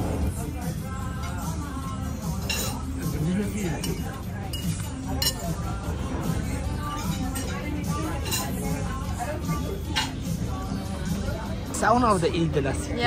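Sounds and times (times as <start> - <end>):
background music: 0.0 - 13.0
cutlery clinking on plates: 2.2 - 5.7, 6.8 - 8.8, 9.8 - 10.3.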